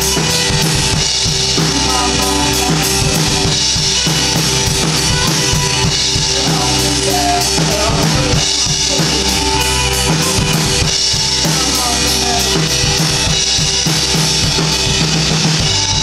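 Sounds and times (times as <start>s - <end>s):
distorted electric guitars: 0.0s - 16.0s
drum kit beat: 0.0s - 16.0s.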